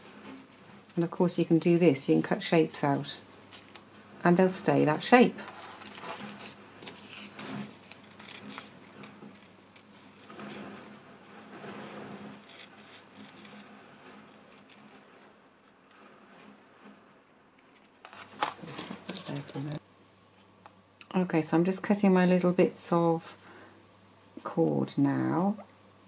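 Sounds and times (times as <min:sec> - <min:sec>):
paper rustling: 0:02.2 - 0:03.9, 0:04.9 - 0:16.9, 0:17.6 - 0:19.8.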